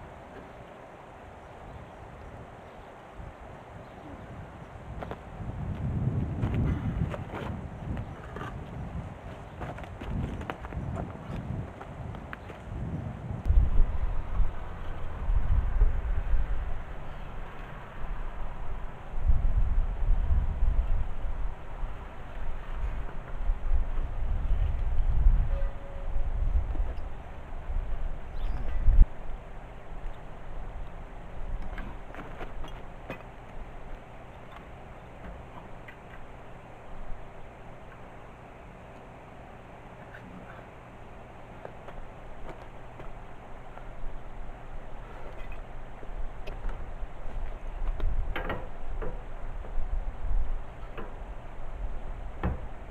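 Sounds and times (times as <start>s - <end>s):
wind rumbling on microphone: 1.2s - 37.6s, 41.8s - 52.9s.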